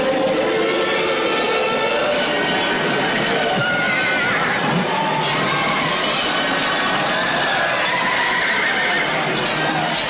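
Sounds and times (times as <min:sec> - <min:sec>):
horses whinnying: 0:02.2 - 0:10.0.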